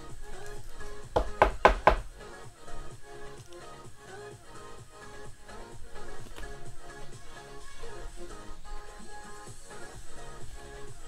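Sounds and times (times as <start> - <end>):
electronic background music: 0.0 - 11.0.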